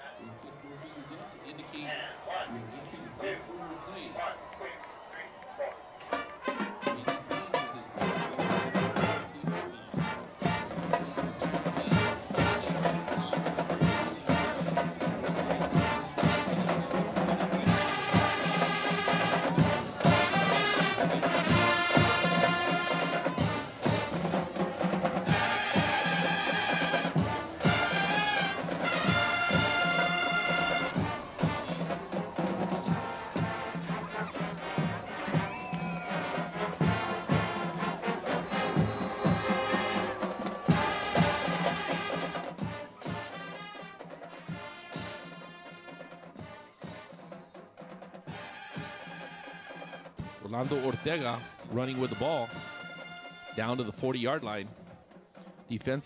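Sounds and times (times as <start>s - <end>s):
brass band playing: 1.9s - 54.7s
long held brass chords: 6.0s - 10.8s, 17.6s - 24.4s, 25.2s - 46.7s
steady drum beat: 6.1s - 56.0s.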